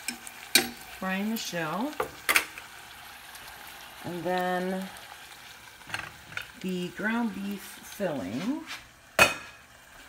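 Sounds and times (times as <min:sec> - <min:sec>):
tortilla sizzling in oil: 0:00.0 - 0:10.0.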